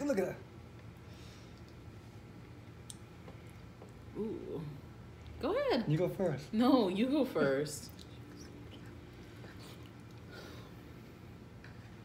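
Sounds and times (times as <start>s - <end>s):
low steady hum: 0.0s - 12.0s
chewing and mouth noises: 7.8s - 10.9s.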